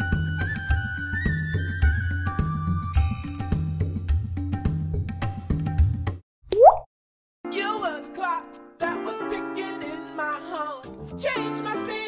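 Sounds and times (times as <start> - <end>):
cartoon bloop pop: 6.5 - 6.9
background music: 7.5 - 12.0.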